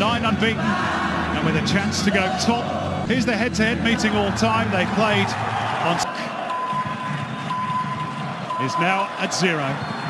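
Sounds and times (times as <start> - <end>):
high electronic beep tone: 6.5 - 9.0.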